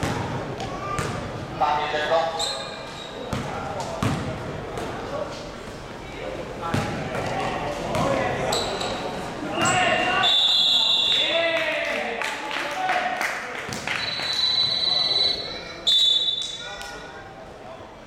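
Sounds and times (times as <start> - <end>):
basketball bouncing on hard floor: 3.3 - 4.9
referee's whistle: 9.6 - 11.3, 13.9 - 16.7.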